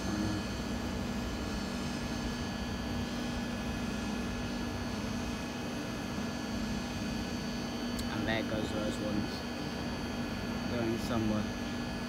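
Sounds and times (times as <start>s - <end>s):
train electric hum and fan: 0.0s - 12.0s.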